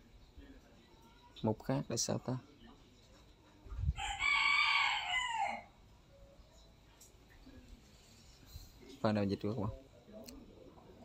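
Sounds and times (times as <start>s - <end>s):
rooster crowing: 4.0s - 5.8s.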